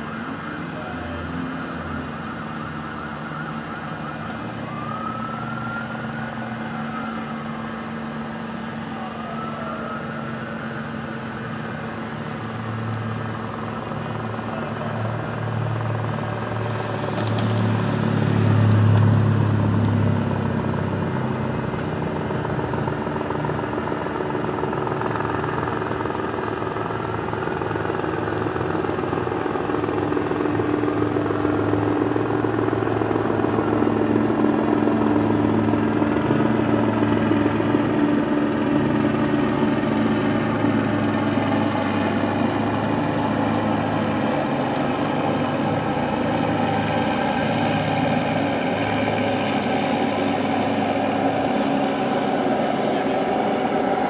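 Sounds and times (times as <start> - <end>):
distant siren wailing: 0.0 - 54.0
vehicle engine idling: 0.0 - 54.0.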